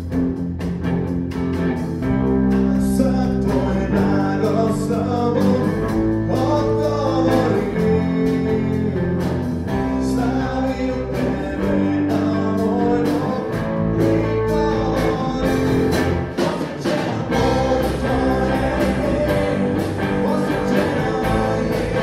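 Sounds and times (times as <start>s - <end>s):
rock band playing: 0.0s - 22.0s
man singing into microphone: 2.5s - 9.2s, 9.9s - 22.0s.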